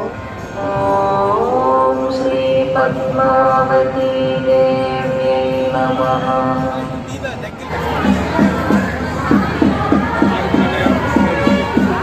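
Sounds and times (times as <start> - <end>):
devotional chanting: 0.0 - 12.0.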